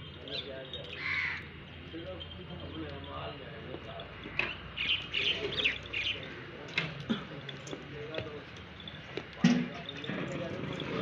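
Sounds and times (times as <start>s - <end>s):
faint voices: 0.0s - 11.0s
small birds chirping: 0.0s - 11.0s.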